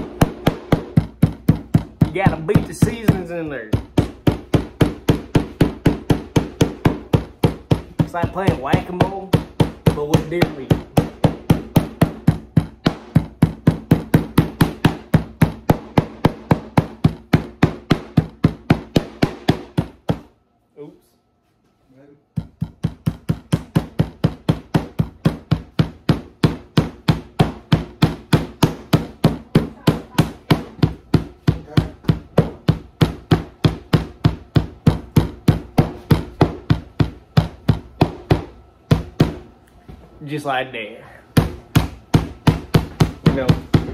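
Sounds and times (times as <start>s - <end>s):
metal mallet pounding meat on wood: 0.0s - 20.3s, 22.3s - 39.5s, 41.3s - 43.9s.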